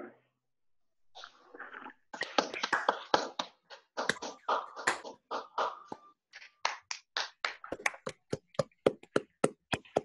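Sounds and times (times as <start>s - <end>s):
hands clapping: 2.2s - 9.9s.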